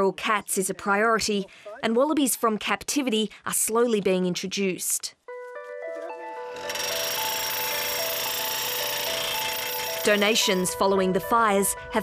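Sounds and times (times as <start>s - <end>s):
background music: 5.2s - 12.0s
drilling rig hammering: 6.6s - 10.6s.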